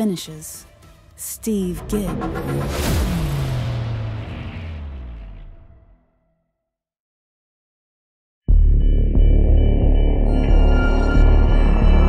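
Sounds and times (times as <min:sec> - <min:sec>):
deep cinematic boom: 0:01.7 - 0:06.3.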